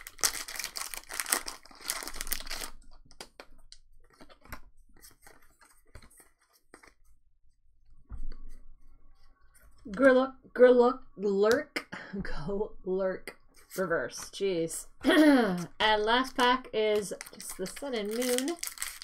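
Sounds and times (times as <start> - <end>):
foil wrapper tearing and crinkling: 0.0 - 6.4, 16.3 - 19.0.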